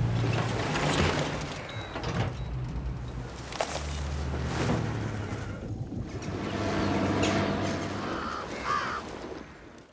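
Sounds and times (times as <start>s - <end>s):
crows cawing: 7.9s - 9.9s.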